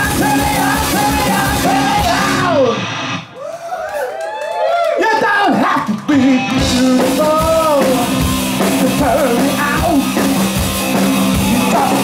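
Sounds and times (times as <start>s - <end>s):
live punk rock band: 0.0s - 3.3s, 5.8s - 12.0s.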